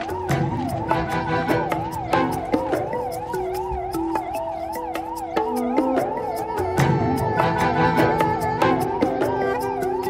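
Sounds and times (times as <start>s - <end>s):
emergency siren warbling: 0.0s - 10.0s.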